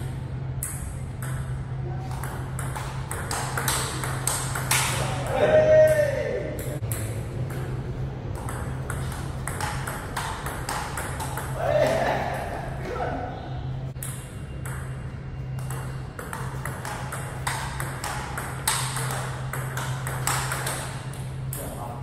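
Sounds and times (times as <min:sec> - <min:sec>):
table tennis ball clicking: 0:02.2 - 0:05.0, 0:08.4 - 0:11.6, 0:15.6 - 0:21.7.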